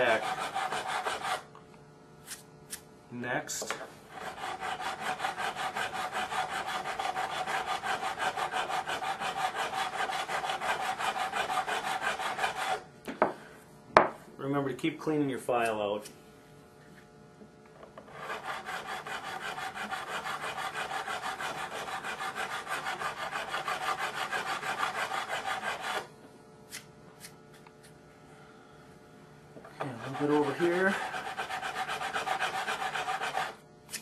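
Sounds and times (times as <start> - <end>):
file rasping on fret wire: 0.0 - 1.5, 4.1 - 12.8, 18.0 - 26.1, 29.8 - 34.0.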